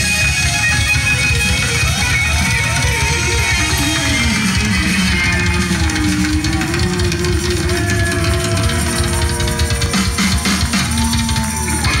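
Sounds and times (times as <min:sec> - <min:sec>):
electric guitar long bending notes: 0:00.0 - 0:12.0
live rock band playing: 0:00.0 - 0:12.0.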